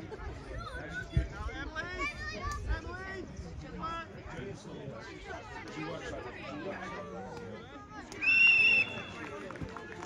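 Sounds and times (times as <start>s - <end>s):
faint chatter: 0.0s - 10.0s.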